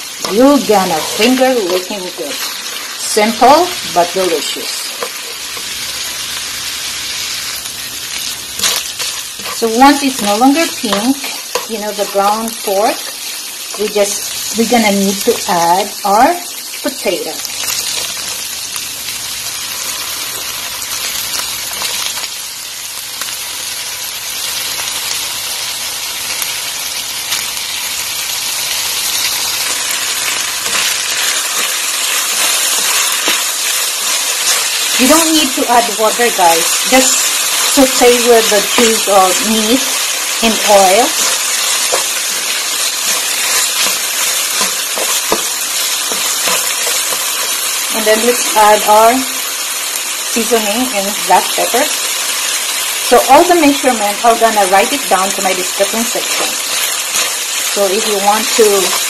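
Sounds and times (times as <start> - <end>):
meat frying in a pan: 0.0 - 59.0.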